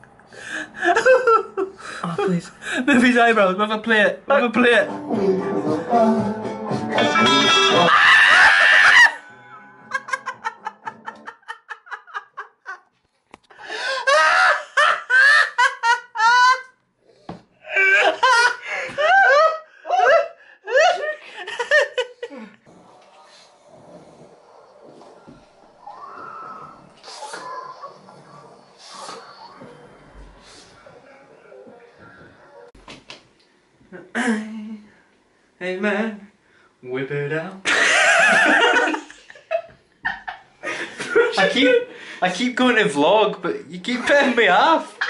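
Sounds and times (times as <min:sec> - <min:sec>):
man laughing hard: 0:07.2 - 0:09.2, 0:09.9 - 0:12.8, 0:13.8 - 0:16.7, 0:17.7 - 0:22.4
person gasping and laughing: 0:13.5 - 0:14.6, 0:17.6 - 0:21.4.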